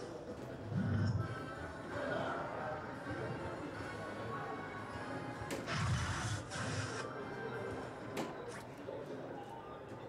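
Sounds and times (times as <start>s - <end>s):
dart striking electronic dartboard: 5.5s - 6.0s.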